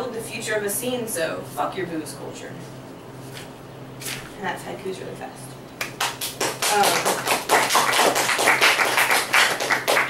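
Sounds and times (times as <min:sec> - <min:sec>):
audience applauding: 0:06.0 - 0:10.0.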